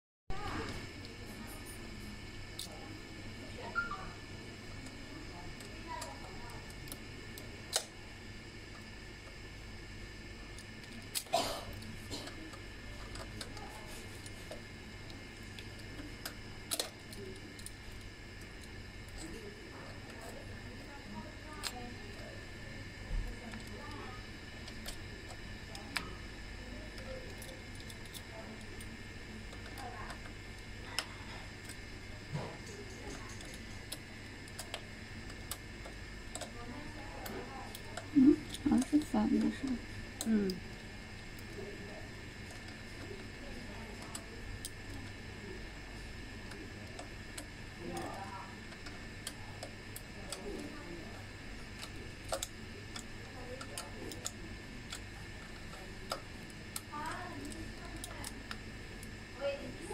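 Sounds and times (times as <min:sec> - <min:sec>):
steady low hum: 0:00.3 - 0:59.9.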